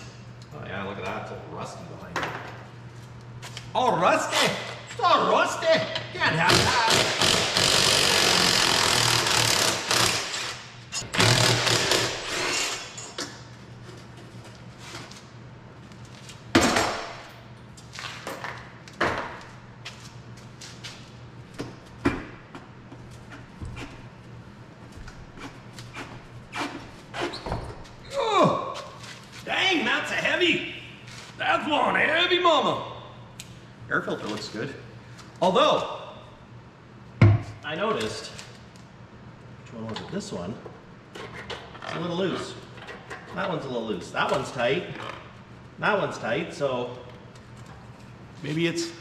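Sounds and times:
cordless power tool running: 6.5s - 12.4s.

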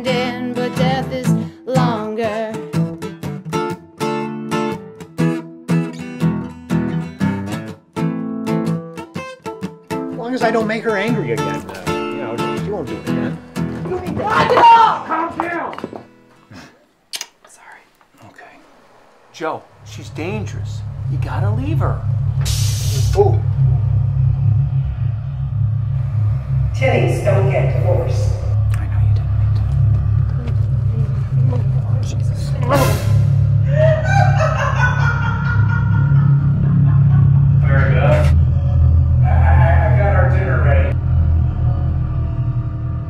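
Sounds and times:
person whispering: 17.5s - 18.6s
dramatic trailer music drone: 18.8s - 43.0s
sweeping whoosh: 18.8s - 43.0s
held higher tone: 19.8s - 42.8s
short sharp sound: 22.0s - 25.2s, 32.6s - 33.7s.

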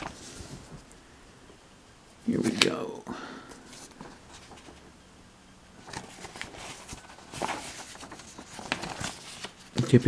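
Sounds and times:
paper pages turning: 0.0s - 0.8s, 3.7s - 4.8s, 5.8s - 10.0s.

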